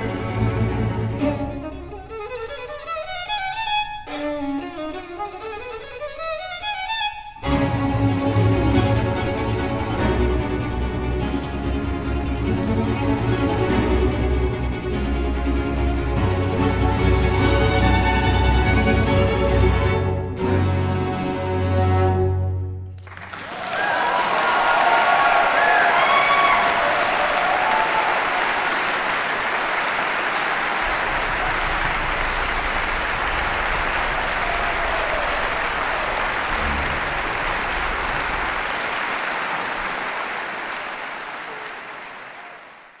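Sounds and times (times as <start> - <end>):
audience applauding: 22.9 - 43.0
shouted cheers: 23.3 - 38.5.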